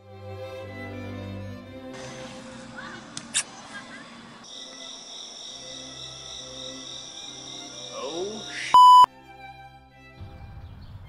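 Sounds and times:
night insects chirring: 0:04.4 - 0:08.8
electronic bleep: 0:08.7 - 0:09.1.

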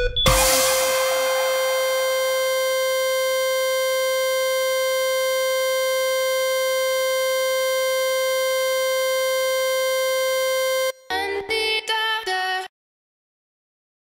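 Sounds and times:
sustained electronic tone: 0:00.3 - 0:11.0.

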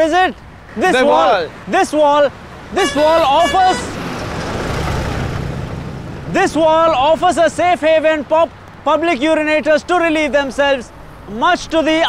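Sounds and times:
bus passing by: 0:00.5 - 0:08.4.

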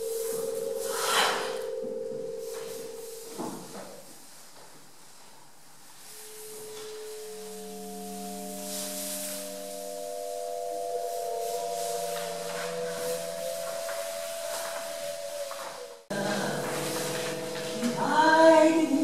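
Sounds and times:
layered pure tones: 0:00.0 - 0:03.8, 0:06.0 - 0:19.0.

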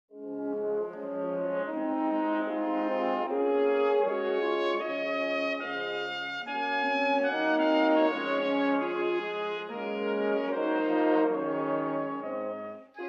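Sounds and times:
brass chords: 0:00.1 - 0:13.0.

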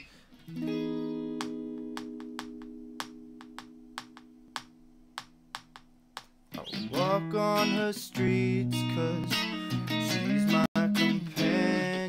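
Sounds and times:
loud guitar strumming: 0:00.5 - 0:04.8
electric guitar chord ringing: 0:00.5 - 0:05.5.

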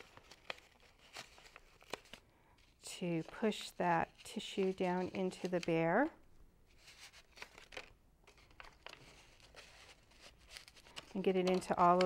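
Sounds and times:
tissue paper rustling and crinkling: 0:00.0 - 0:06.1, 0:06.7 - 0:12.0.

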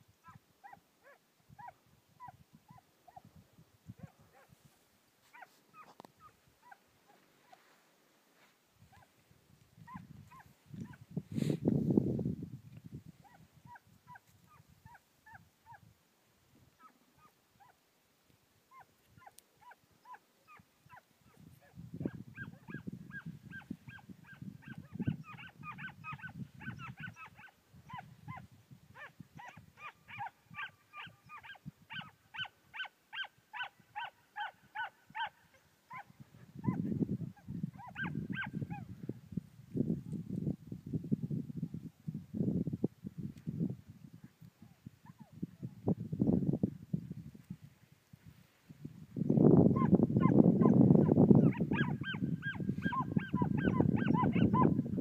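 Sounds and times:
hounds yelping: 0:00.2 - 0:03.2, 0:18.7 - 0:21.0, 0:22.0 - 0:28.4, 0:29.0 - 0:36.8, 0:37.8 - 0:38.9, 0:49.8 - 0:54.8.

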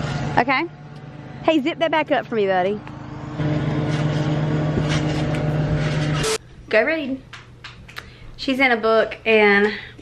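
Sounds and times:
steady motor hum: 0:00.0 - 0:06.4.

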